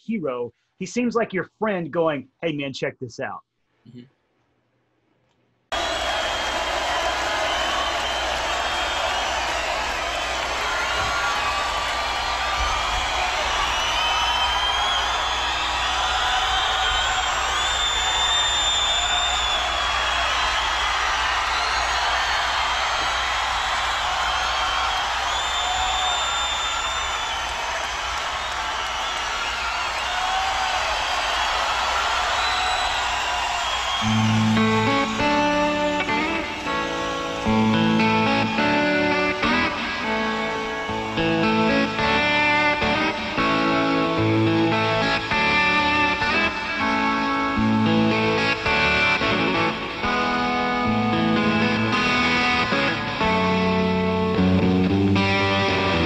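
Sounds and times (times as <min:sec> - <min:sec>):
crowd cheering and screaming: 0:05.7 - 0:56.0
crowd whistling: 0:05.7 - 0:56.0
electric guitar sustained notes: 0:34.0 - 0:56.0.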